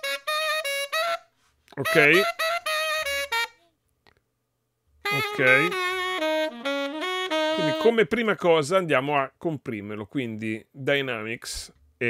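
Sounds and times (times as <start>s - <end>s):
saxophone short detached notes: 0.0s - 3.7s, 5.0s - 8.0s.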